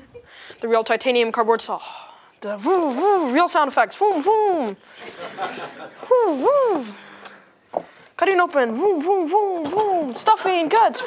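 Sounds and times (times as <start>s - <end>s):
boy imitating a power saw: 6.1s - 7.0s.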